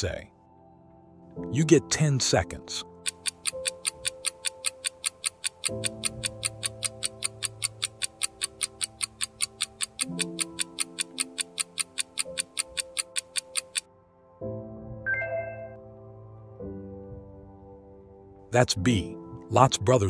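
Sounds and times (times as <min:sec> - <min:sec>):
soft background music chords: 0:00.0 - 0:20.0
fast timer ticking: 0:02.9 - 0:13.9.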